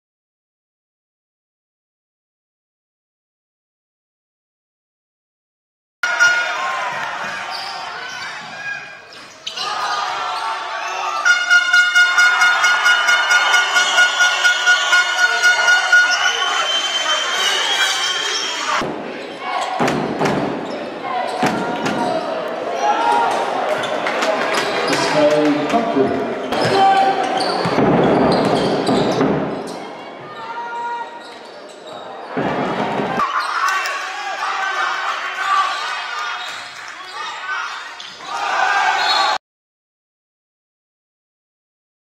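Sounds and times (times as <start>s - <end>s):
voices in indoor arena: 6.0s - 39.4s.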